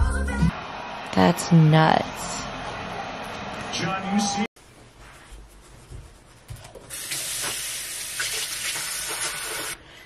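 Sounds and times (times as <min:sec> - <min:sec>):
sink tap running water: 0:06.9 - 0:09.8.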